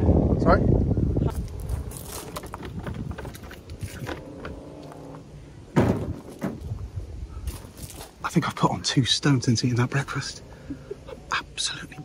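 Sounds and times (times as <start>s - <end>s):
loud thump: 5.7s - 6.8s.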